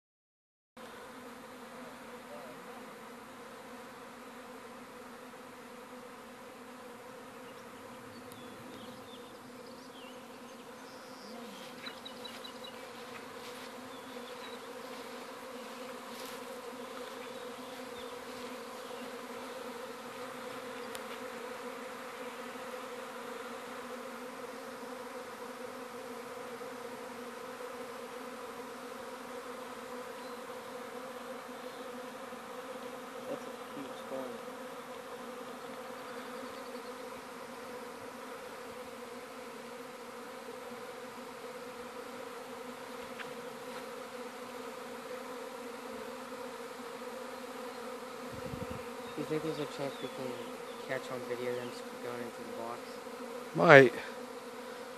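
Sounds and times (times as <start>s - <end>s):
swarm of bees humming: 0.8s - 54.9s.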